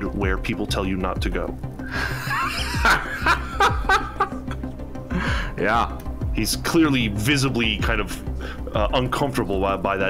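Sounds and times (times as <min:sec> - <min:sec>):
background music with low bass: 0:00.0 - 0:10.0
person laughing uneasily: 0:01.9 - 0:05.4.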